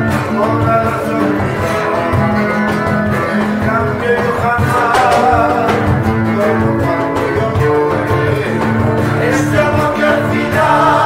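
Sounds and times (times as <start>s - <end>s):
acoustic guitars playing: 0.0s - 11.0s
cajon beat: 0.0s - 11.0s.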